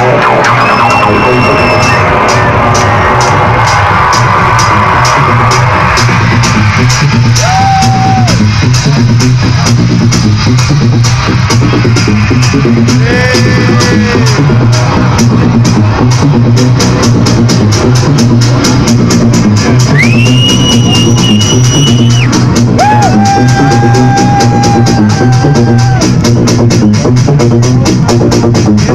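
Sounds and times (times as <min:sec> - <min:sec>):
deep bass line: 0:00.0 - 0:28.9
techno beat: 0:00.0 - 0:28.9.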